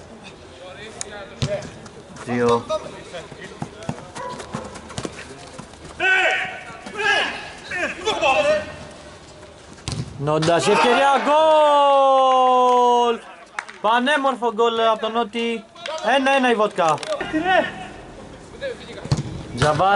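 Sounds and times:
men shouting: 6.0 - 8.5, 10.6 - 12.7
ball kicked: 9.8 - 10.2, 19.0 - 19.8.

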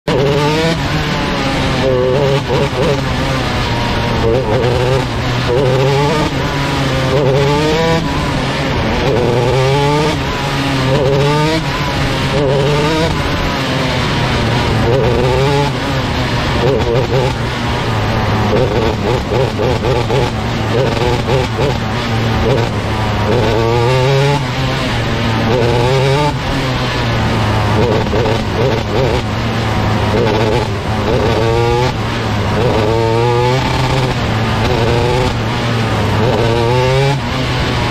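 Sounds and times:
race car engine revving: 0.0 - 37.9.

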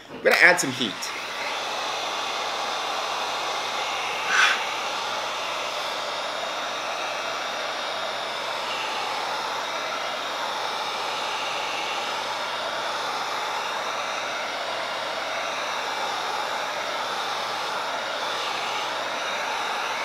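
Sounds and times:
heat gun blowing hot air: 0.3 - 20.0.

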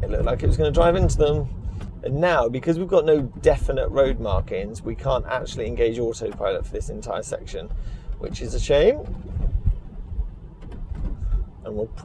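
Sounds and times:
low thumps: 0.0 - 12.0
road and tyre rumble: 0.0 - 12.0.

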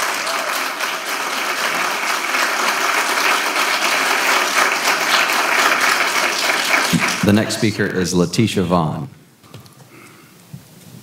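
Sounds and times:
audience applauding: 0.0 - 8.1.

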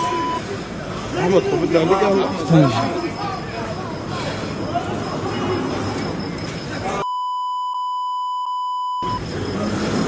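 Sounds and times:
outdoor commotion with voices: 0.0 - 7.3, 9.0 - 10.0
censor bleep: 7.0 - 9.2.

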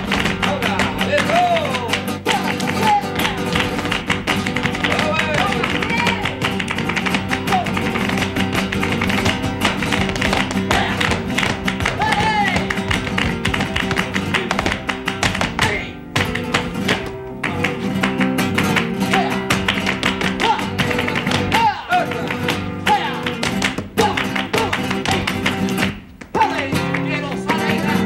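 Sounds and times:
flamenco guitar playing: 0.0 - 28.0
hand-clapping: 0.0 - 28.0
dancer's footwork on stage floor: 2.8 - 17.8.

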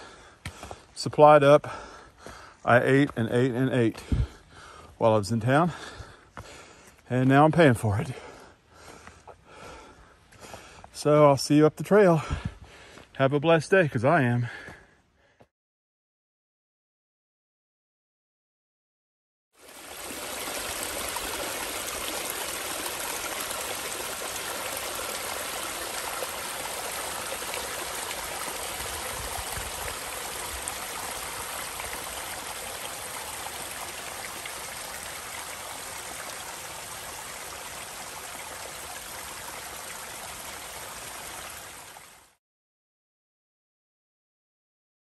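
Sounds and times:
stream splashing over rocks: 19.6 - 42.4.

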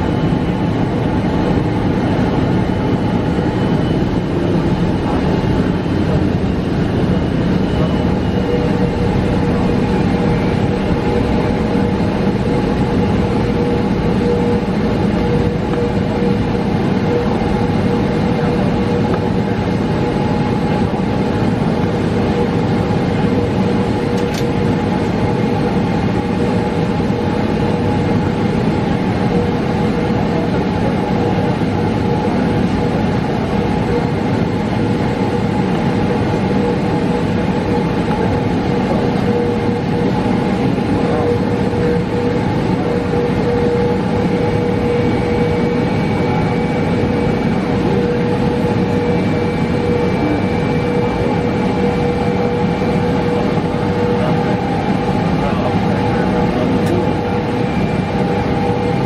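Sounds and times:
jet engines idling: 0.0 - 59.0
faint high whine: 35.1 - 59.0.

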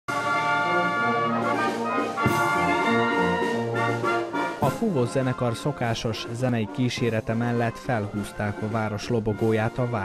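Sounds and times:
brass band playing chords: 0.1 - 10.0.

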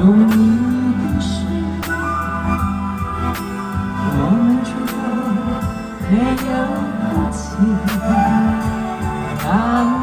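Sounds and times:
live ballad music over pa: 0.0 - 10.0.

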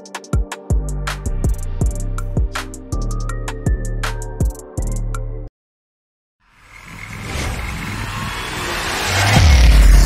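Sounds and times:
rising noise: 6.7 - 10.0.

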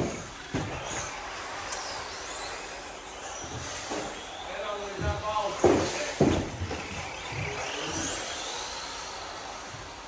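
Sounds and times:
toy car electric motor whine: 0.0 - 10.0.

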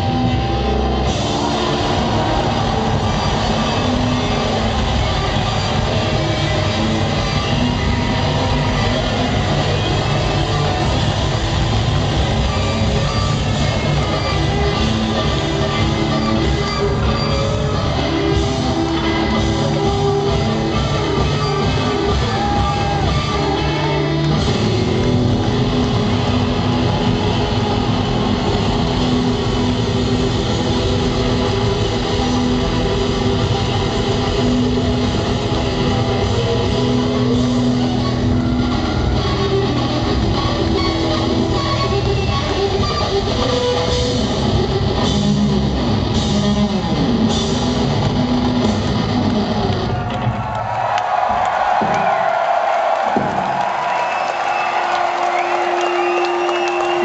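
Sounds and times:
distorted electric guitars droning: 0.0 - 50.3
live rock band: 0.0 - 50.4
crowd cheering and whistling: 0.0 - 57.0
drum hits: 51.3 - 52.4, 53.0 - 53.8.

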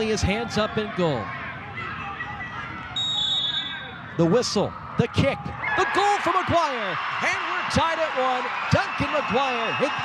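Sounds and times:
stadium crowd murmur: 0.0 - 10.0
referee's whistle blast: 3.0 - 4.0.

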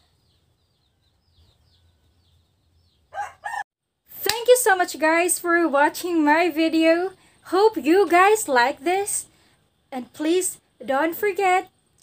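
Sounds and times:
rooster crowing: 3.1 - 3.7.

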